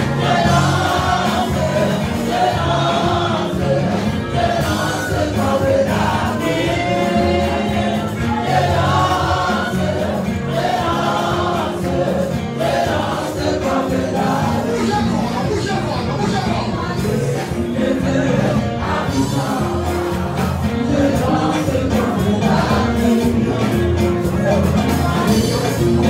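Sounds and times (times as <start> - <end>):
gospel choir singing: 0.0 - 26.0
instrumental backing: 0.0 - 26.0.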